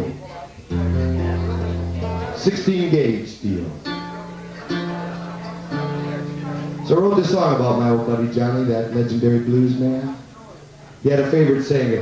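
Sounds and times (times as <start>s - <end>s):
acoustic guitar chord ringing: 0.7s - 8.8s.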